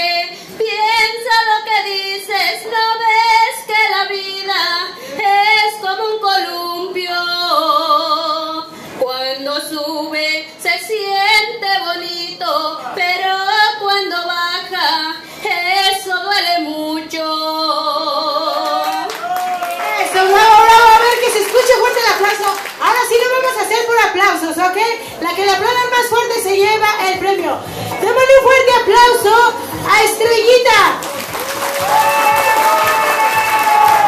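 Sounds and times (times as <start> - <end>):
woman singing into a microphone: 0.0 - 19.1.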